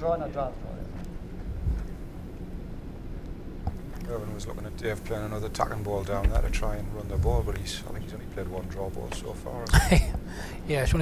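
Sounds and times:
low hall hum: 0:00.0 - 0:11.0
soft low thud: 0:06.2 - 0:07.8.

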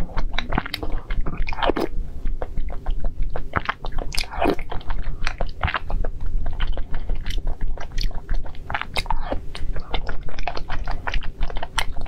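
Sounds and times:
wet chewing clicks: 0:00.0 - 0:12.0.

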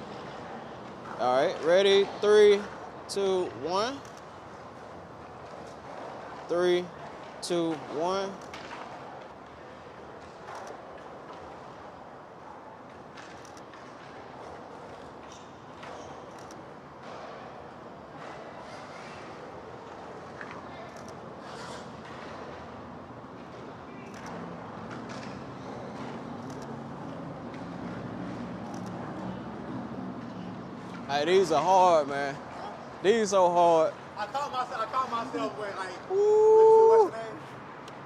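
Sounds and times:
background traffic noise: 0:00.0 - 0:38.0.

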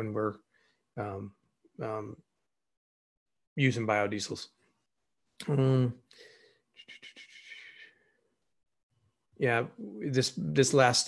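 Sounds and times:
man breathing: 0:06.1 - 0:08.3.

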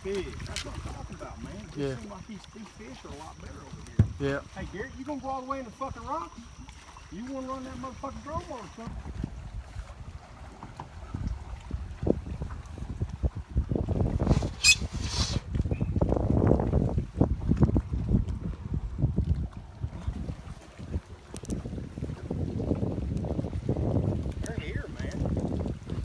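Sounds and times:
water slapping boat hull: 0:00.0 - 0:26.0
wind buffeting microphone: 0:00.0 - 0:26.0.

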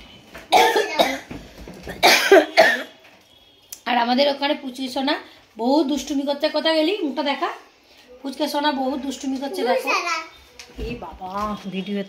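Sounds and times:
person coughing: 0:00.5 - 0:02.9.

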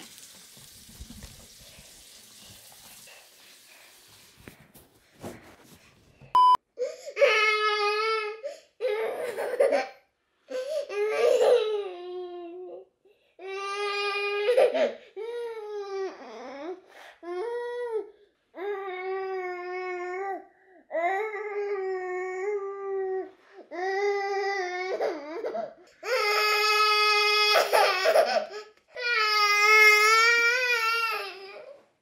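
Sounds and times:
baby crying: 0:06.8 - 0:12.8.

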